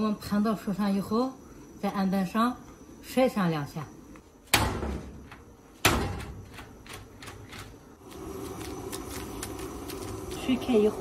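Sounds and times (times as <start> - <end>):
water boiling in a wok: 6.3 - 11.0.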